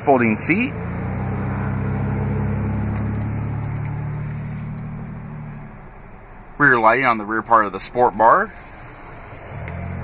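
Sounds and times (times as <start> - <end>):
low motor hum: 0.0 - 6.6, 7.2 - 10.0.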